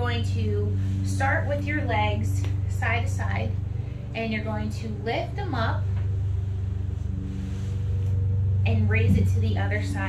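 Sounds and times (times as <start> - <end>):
low electrical hum: 0.0 - 10.0.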